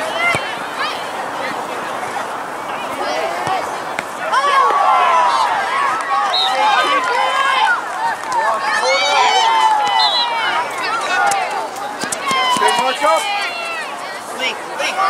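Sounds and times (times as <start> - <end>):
people shouting and calling: 0.0 - 15.0.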